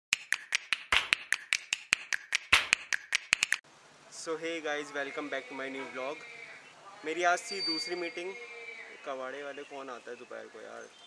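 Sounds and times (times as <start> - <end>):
quick sharp clicks: 0.1 - 3.6.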